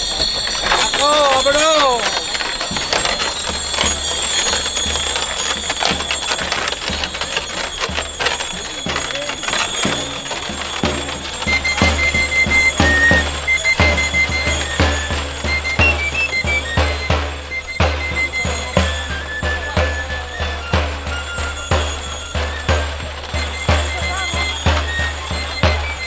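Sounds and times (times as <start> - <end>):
crowd chatter: 0.0 - 26.0
drum beating steadily: 0.0 - 26.0
high pipe playing held notes: 0.0 - 26.0
scattered clicks and knocks: 0.0 - 26.0.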